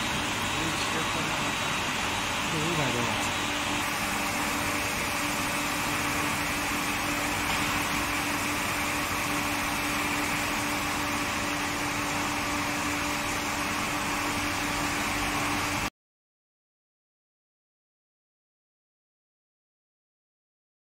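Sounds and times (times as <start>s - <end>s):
machine hum with low tone: 0.0s - 15.9s.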